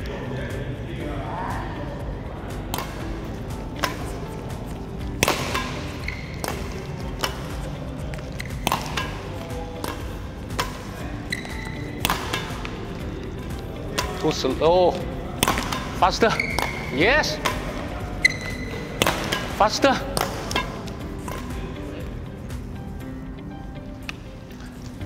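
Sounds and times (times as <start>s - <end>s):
background music: 0.0s - 25.0s
badminton rackets hitting shuttlecocks: 2.6s - 21.9s.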